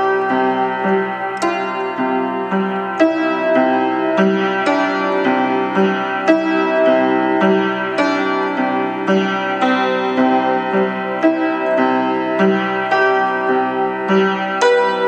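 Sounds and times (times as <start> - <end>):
out of tune upright piano: 0.0 - 15.0.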